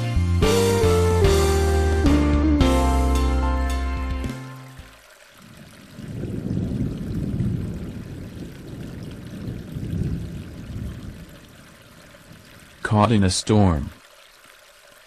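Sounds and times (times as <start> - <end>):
rushing water: 0.0 - 15.0.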